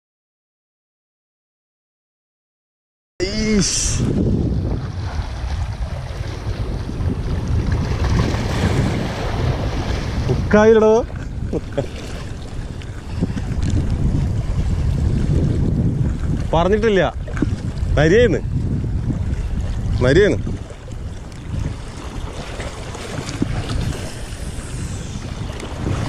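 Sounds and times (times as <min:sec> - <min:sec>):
short voice sound: 0:03.2 - 0:04.1
waves washing against rocks: 0:03.2 - 0:18.2, 0:18.9 - 0:26.0
wind buffeting microphone: 0:03.2 - 0:26.0.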